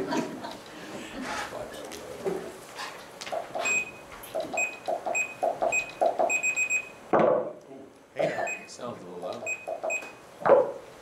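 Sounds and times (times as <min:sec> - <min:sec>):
short high electronic beeps: 0:03.6 - 0:04.0, 0:04.6 - 0:07.0, 0:09.4 - 0:10.2.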